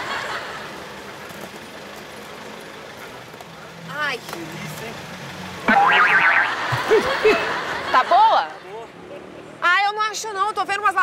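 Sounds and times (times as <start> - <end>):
comedic boing sound effect: 5.7 - 7.0.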